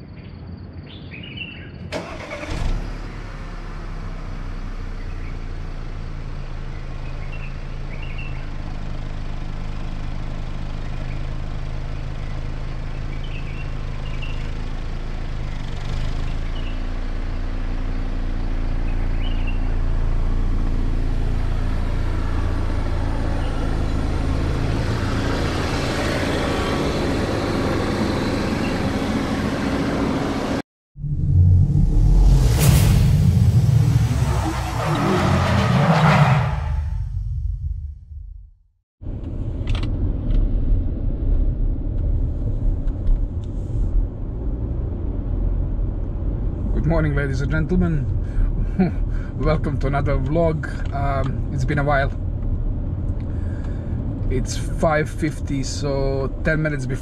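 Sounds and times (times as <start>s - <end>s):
car engine starting and idling: 1.7s - 38.4s, 39.0s - 57.0s.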